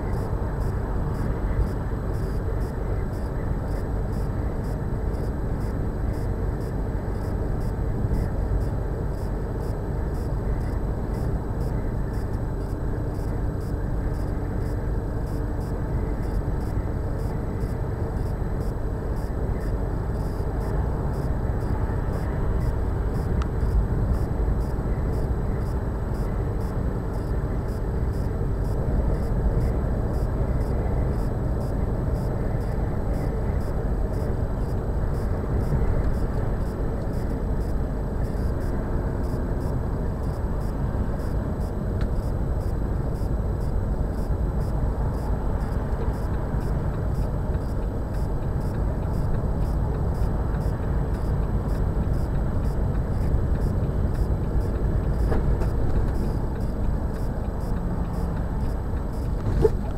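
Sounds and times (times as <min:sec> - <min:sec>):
lorry engine and tyre noise: 0:00.0 - 0:59.9.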